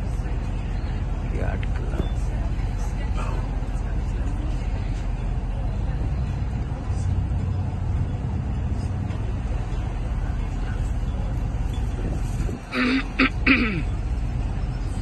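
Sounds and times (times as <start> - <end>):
boat engine rumbling: 0.0 - 15.0
outdoor noise: 0.0 - 15.0.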